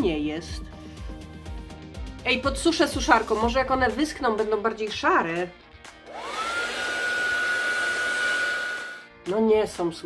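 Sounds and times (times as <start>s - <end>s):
hair dryer blowing: 6.0s - 9.1s.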